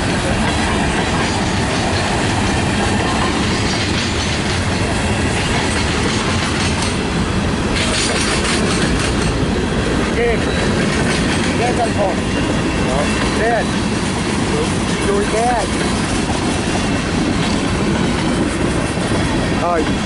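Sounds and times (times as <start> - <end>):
train wheels on rails: 0.0 - 20.0
sharp rail clicks: 0.3 - 12.0.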